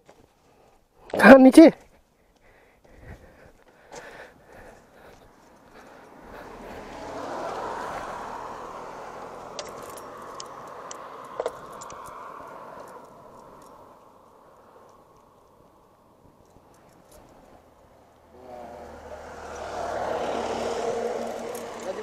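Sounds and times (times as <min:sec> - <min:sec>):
road vehicle passing: 0:04.0 - 0:22.0.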